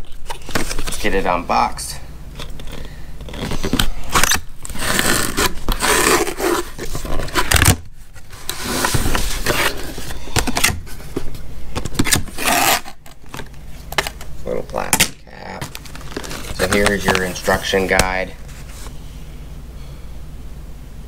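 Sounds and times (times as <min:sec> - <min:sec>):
cardboard flaps scraping: 0:03.2 - 0:11.3, 0:15.7 - 0:19.0.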